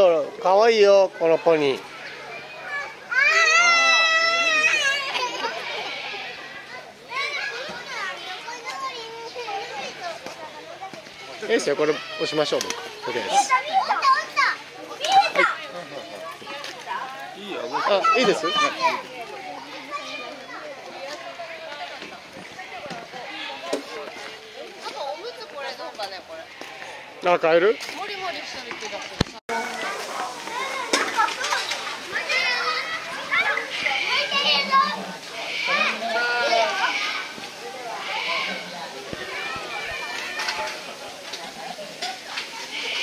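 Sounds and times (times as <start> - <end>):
young children chattering: 0.0 - 43.0
people talking: 27.9 - 43.0.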